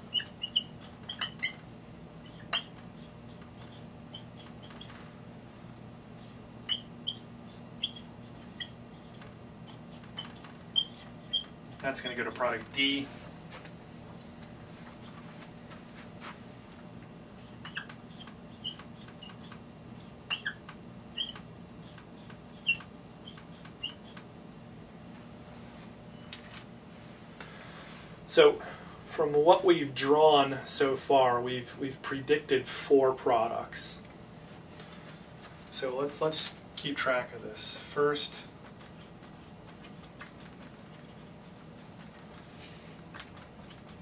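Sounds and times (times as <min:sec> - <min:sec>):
marker squeaking on whiteboard: 0:00.0 - 0:05.2, 0:06.1 - 0:12.4, 0:17.4 - 0:24.3, 0:38.6 - 0:44.0
low steady hum: 0:00.0 - 0:44.0.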